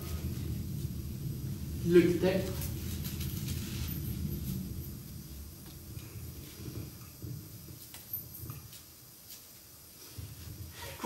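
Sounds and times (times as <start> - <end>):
low rumble: 0.0 - 8.6.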